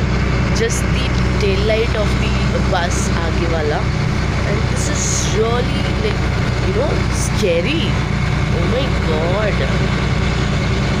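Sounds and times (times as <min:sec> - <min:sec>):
vehicle engine droning: 0:00.0 - 0:11.0
person's voice: 0:00.6 - 0:10.0.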